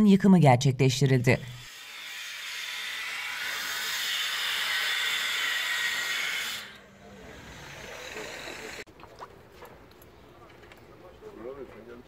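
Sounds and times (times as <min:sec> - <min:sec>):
power tool cutting with hiss: 0:01.4 - 0:08.9.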